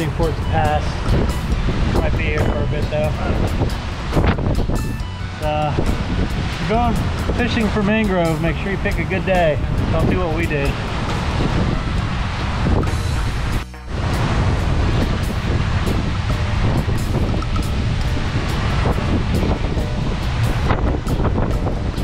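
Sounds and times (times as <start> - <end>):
gusty wind buffeting microphone: 0.0 - 22.0
rough surf churning: 0.0 - 22.0.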